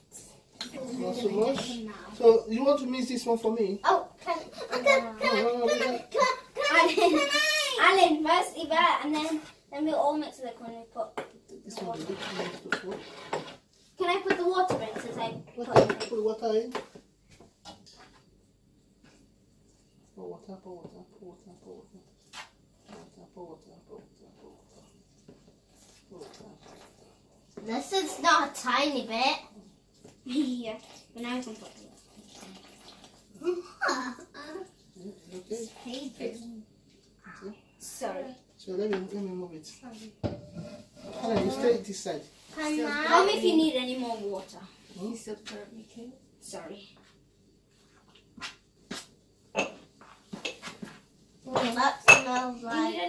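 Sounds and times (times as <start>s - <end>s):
spoon scraping glass bowl: 11.9s - 13.6s, 40.4s - 41.3s.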